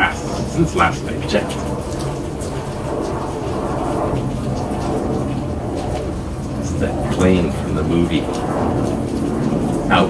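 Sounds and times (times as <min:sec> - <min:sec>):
rain: 0:00.0 - 0:10.0
wind: 0:00.0 - 0:10.0.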